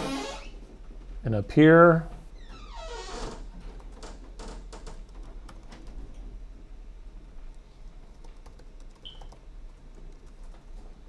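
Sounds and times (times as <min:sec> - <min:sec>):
computer keyboard keystrokes: 0:05.0 - 0:06.0, 0:08.0 - 0:10.6.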